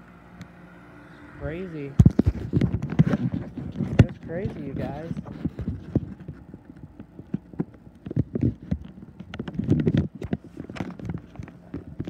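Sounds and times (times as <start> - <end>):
phone rubbing and knocking: 2.0 - 12.0.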